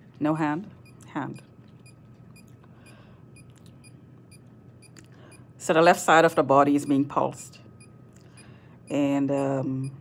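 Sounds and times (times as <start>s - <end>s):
meter beeping faintly: 0.3s - 10.0s.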